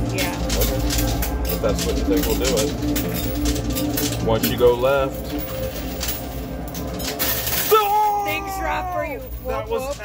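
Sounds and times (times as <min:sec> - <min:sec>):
background music: 0:00.0 - 0:10.0
coins clicking and sliding: 0:00.0 - 0:10.0.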